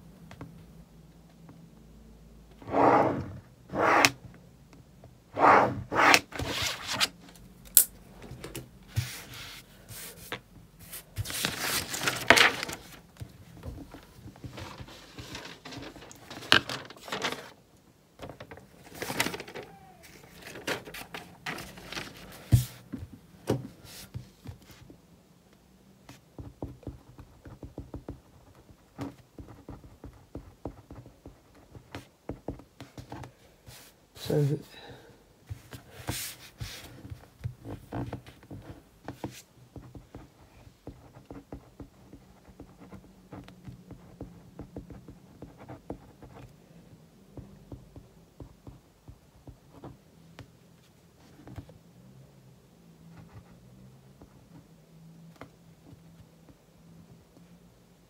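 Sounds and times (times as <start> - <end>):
pen writing: 2.6 - 4.2, 5.4 - 6.6
paper rustling: 8.9 - 13.0, 13.6 - 17.6, 18.2 - 22.8.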